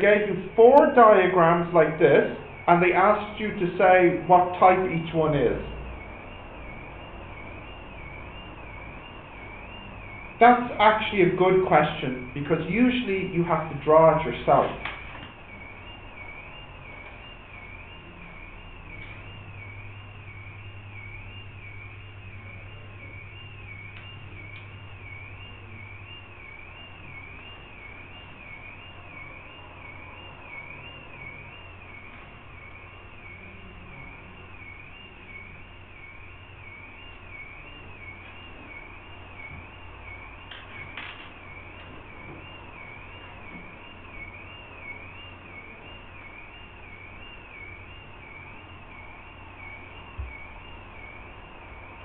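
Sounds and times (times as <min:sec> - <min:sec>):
high-pitched wavering tone: 0:00.0 - 0:52.0
low hum: 0:13.6 - 0:52.0.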